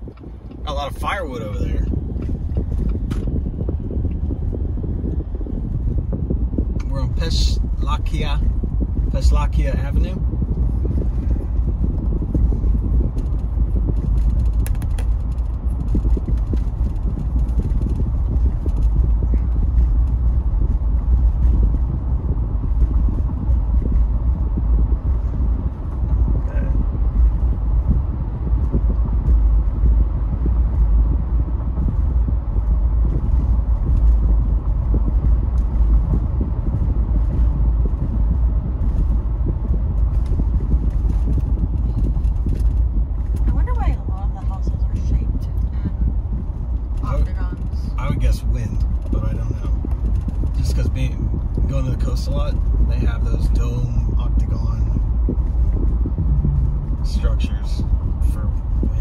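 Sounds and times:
car interior engine and tyre rumble: 0:00.0 - 0:59.0.

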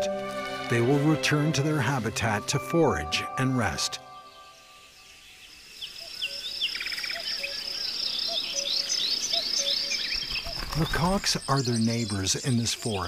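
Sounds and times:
background music: 0:00.0 - 0:05.2
birds chirping: 0:00.0 - 0:13.0
high insect drone: 0:00.1 - 0:13.0
bird trill: 0:02.8 - 0:13.0.

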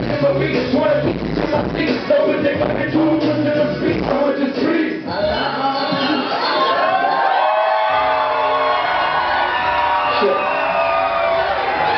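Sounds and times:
loud hip-hop music: 0:00.0 - 0:06.6
crowd whooping and cheering: 0:05.2 - 0:11.9.

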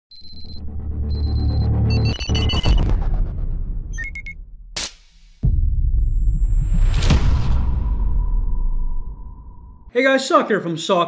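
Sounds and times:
fast high beeping: 0:00.1 - 0:02.9, 0:04.0 - 0:04.4
bright electronic bleeps: 0:00.1 - 0:03.1, 0:03.9 - 0:04.4
low rumble: 0:02.4 - 0:04.8, 0:05.4 - 0:09.9
deep low boom: 0:05.4 - 0:09.9.

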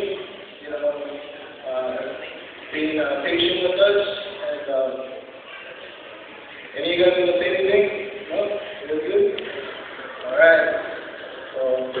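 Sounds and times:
man's voice: 0:00.0 - 0:05.2, 0:06.8 - 0:09.5.

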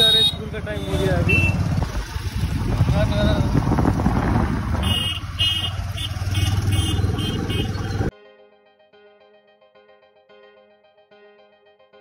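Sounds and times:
vehicle rumble: 0:00.0 - 0:08.1
wind buffeting microphone: 0:00.9 - 0:08.1.

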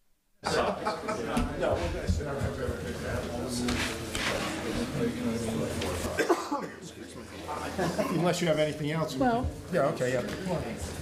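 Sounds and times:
person coughing: 0:06.2 - 0:06.8.

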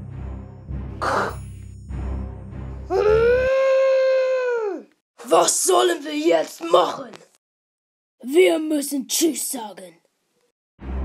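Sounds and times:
long howling cry: 0:02.9 - 0:04.9.

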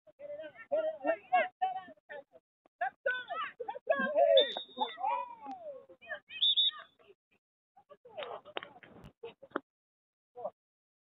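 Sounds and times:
people shouting: 0:03.1 - 0:06.8
referee's whistle: 0:04.2 - 0:05.0, 0:06.3 - 0:06.9.

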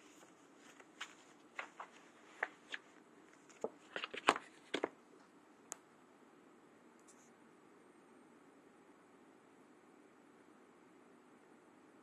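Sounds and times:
faint room hiss: 0:00.0 - 0:12.0
cards clicking and tapping: 0:03.5 - 0:05.0.

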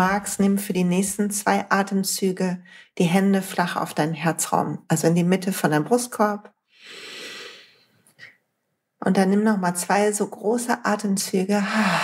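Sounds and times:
woman breathing deeply: 0:06.7 - 0:07.9, 0:11.6 - 0:12.0.

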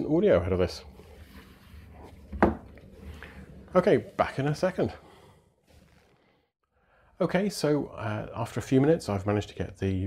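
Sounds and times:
knock on wooden desk: 0:02.4 - 0:02.7.

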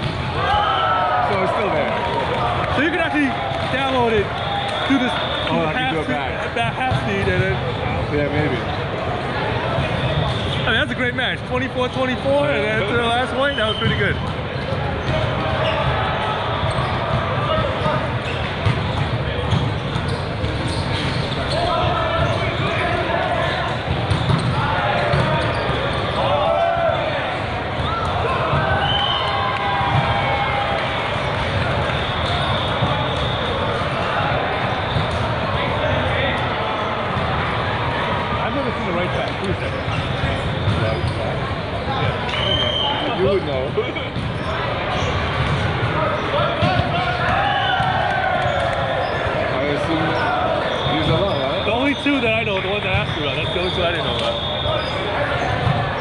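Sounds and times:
volleyballs struck and bouncing: 0:00.0 - 0:00.6, 0:13.8 - 0:28.9, 0:29.6 - 0:36.4, 0:39.0 - 0:42.4, 0:43.3 - 0:49.5
many people talking and calling out: 0:00.0 - 0:56.0.

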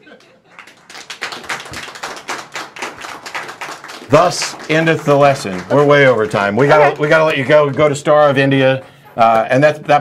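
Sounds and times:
audience applause: 0:00.0 - 0:10.0.

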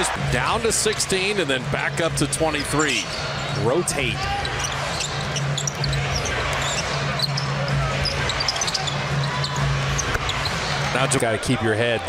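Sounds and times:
arena crowd murmur: 0:00.0 - 0:12.0
sneaker squeaks: 0:04.2 - 0:10.9.

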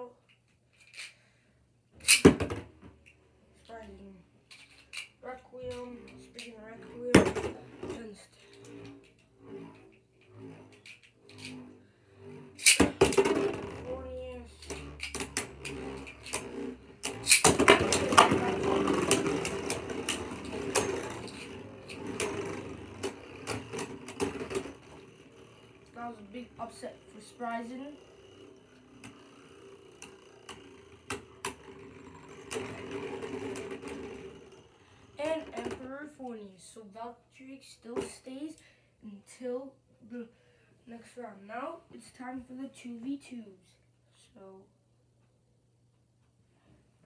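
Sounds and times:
spinning tops colliding: 0:04.5 - 0:35.7.

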